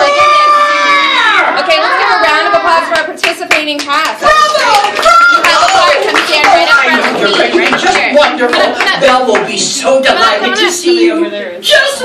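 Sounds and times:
people's voices: 0.0s - 12.0s.

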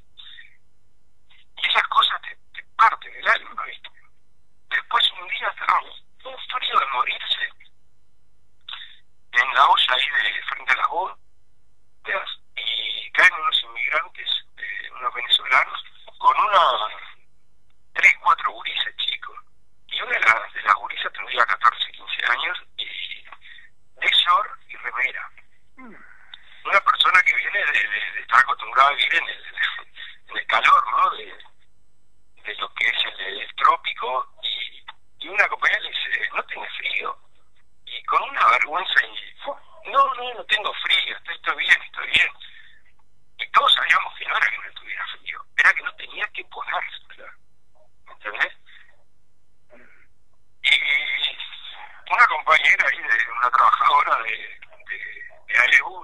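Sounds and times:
person speaking over telephone: 0.2s - 0.5s, 1.6s - 3.9s, 4.7s - 7.6s, 8.7s - 11.2s, 12.1s - 17.2s, 18.0s - 31.5s, 32.4s - 37.1s, 37.9s - 42.7s, 43.4s - 47.3s, 48.1s - 48.9s, 50.6s - 56.0s.

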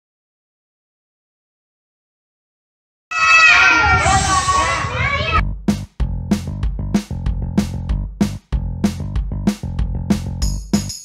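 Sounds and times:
children shouting together: 3.1s - 5.4s.

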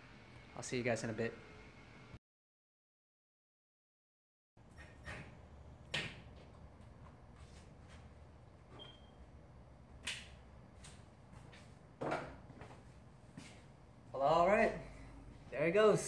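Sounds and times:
low room hum: 4.6s - 16.0s.

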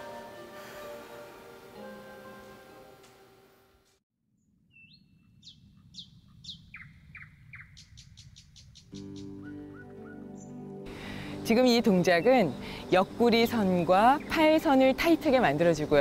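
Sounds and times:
soft music with held notes: 0.0s - 3.5s, 9.0s - 16.0s
bird chirping: 4.4s - 10.6s
bird trilling: 4.7s - 10.6s.

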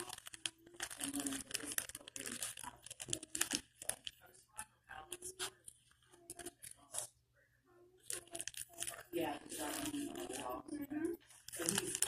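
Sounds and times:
close crinkling and crackling: 0.0s - 7.1s, 8.0s - 12.0s.

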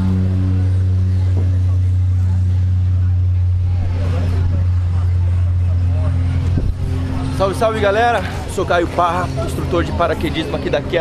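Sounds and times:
faint voices: 0.0s - 11.0s
loud mechanical drone: 0.0s - 11.0s.

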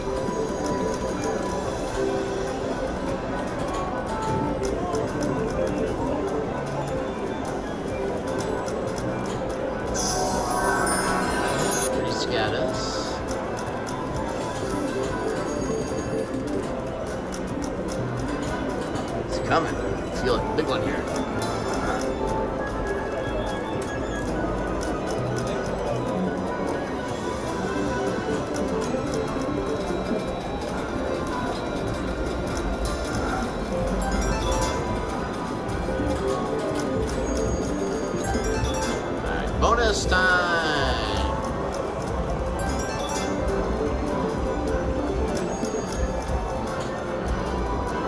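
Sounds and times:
slot machine reels spinning: 0.0s - 48.0s
slot machine jingles: 5.3s - 48.0s.

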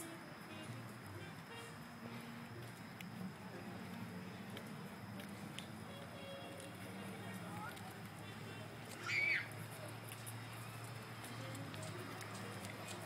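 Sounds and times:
distant people talking: 0.0s - 13.0s
steady low hum: 0.0s - 13.0s.

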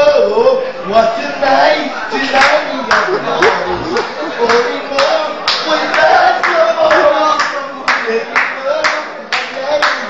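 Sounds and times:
people singing: 0.0s - 10.0s
people clapping in rhythm: 2.4s - 10.0s.

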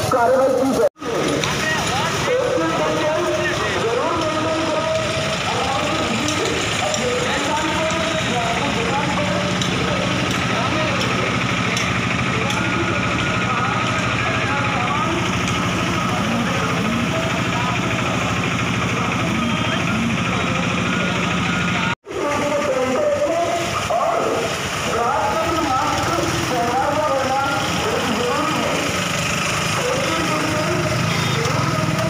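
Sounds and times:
engines running: 0.0s - 32.0s
indistinct voices: 0.0s - 32.0s.

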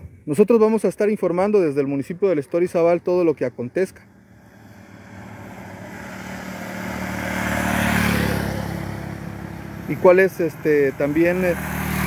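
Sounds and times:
vehicle driving past: 2.9s - 12.0s.

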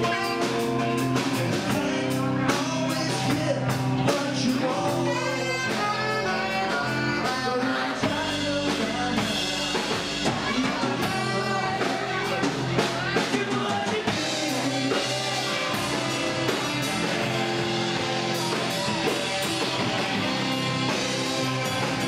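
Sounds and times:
man singing into a microphone: 0.0s - 17.3s
drum kit: 0.0s - 22.0s
electric guitar: 0.0s - 22.0s.

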